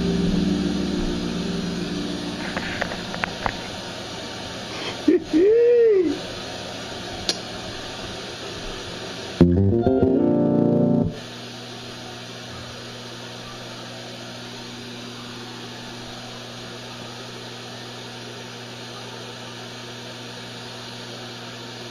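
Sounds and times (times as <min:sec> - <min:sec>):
low electrical hum: 0:00.0 - 0:21.9.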